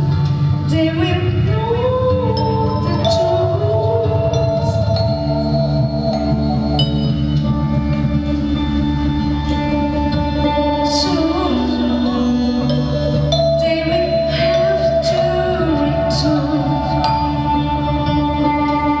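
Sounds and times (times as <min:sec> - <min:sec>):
woman singing wordlessly: 0:00.7 - 0:05.3, 0:10.4 - 0:19.0.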